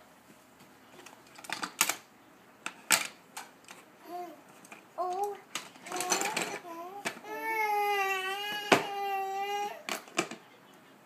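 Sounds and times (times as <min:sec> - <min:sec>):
plastic toy tools clattering: 0:01.0 - 0:02.0, 0:04.6 - 0:07.2.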